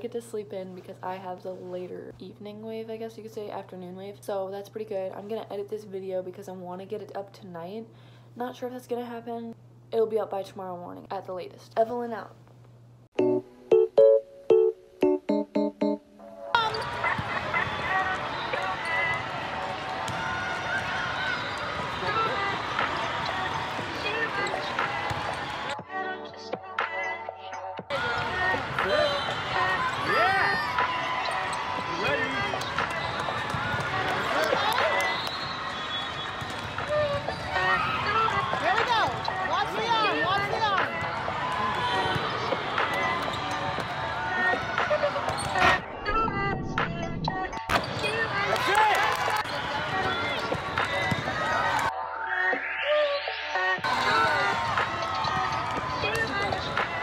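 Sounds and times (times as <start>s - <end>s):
music playing: 13.2s - 18.9s, 38.4s - 57.0s
sneakers squeaking on court: 16.6s - 19.2s, 30.6s - 41.1s, 41.9s - 45.8s, 49.4s - 51.8s, 54.0s - 57.0s
people calling out and cheering: 16.6s - 26.0s, 27.9s - 57.0s.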